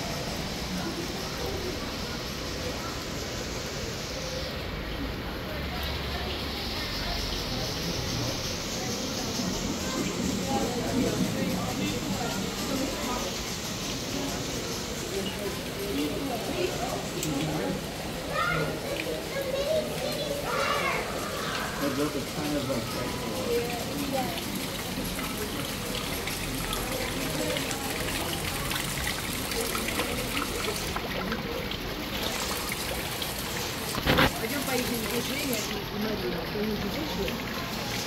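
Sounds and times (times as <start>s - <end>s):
chatter of visitors: 0.0s - 38.0s
fountains trickling: 0.0s - 38.0s
children's voices: 8.7s - 35.9s.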